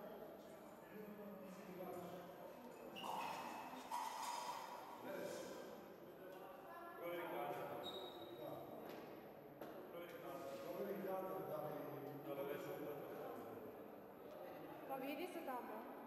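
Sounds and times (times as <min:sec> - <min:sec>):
voices talking in echoing hall: 0:00.0 - 0:16.0.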